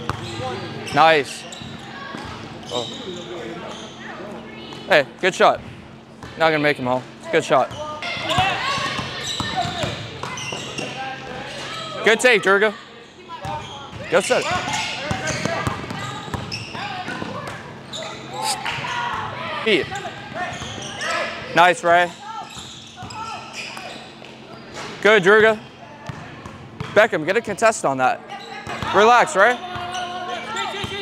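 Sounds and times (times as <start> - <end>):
faint players' voices: 0.0 - 31.0
basketball bouncing: 7.7 - 11.0, 13.4 - 17.6, 26.1 - 27.0.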